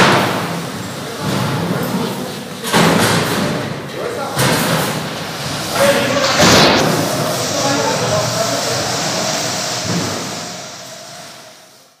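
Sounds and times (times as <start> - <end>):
indistinct voices in echoing hall: 0.0 - 12.0.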